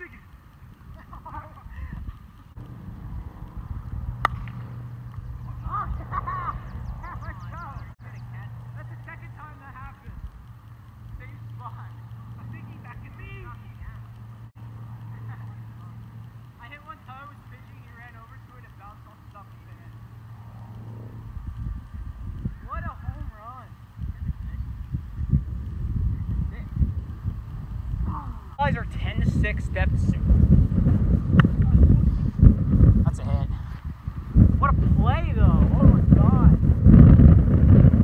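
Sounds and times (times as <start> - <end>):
distant people calling: 0.0 - 25.2
steady low hum: 0.0 - 38.0
sharp crack: 2.2 - 8.0.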